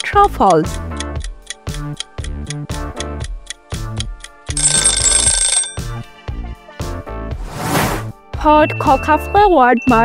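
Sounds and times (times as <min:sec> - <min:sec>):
upbeat background music: 0:00.0 - 0:10.0
ringing bell sound effect: 0:04.6 - 0:05.9, 0:08.6 - 0:10.0.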